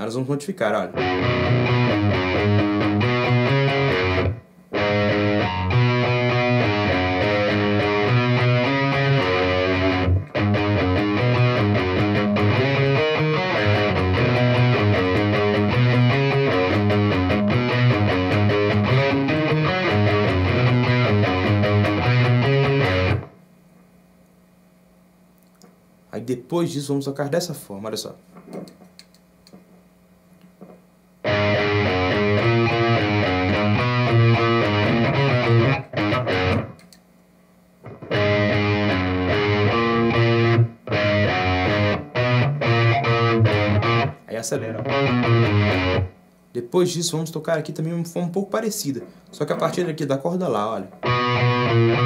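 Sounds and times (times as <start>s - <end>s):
faint steady hum: 0.0s - 52.0s
distorted electric guitar riff: 0.9s - 23.4s, 30.6s - 36.9s, 37.8s - 46.2s, 49.0s - 52.0s.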